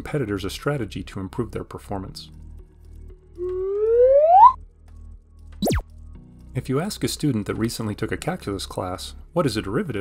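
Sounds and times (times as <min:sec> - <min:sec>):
quiet background music: 0:00.0 - 0:10.0
rising whistle-like tone: 0:03.4 - 0:04.6.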